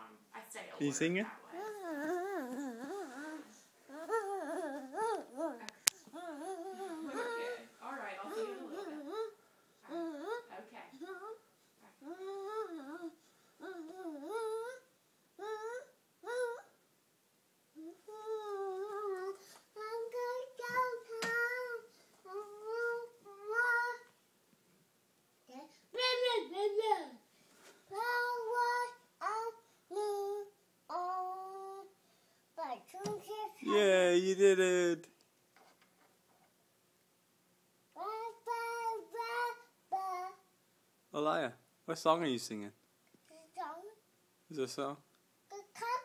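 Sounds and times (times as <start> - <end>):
toddler singing wordless notes: 1.6 - 7.7, 8.3 - 16.8, 17.8 - 24.2, 27.9 - 32.0, 32.6 - 33.6, 37.9 - 40.5, 45.5 - 46.0.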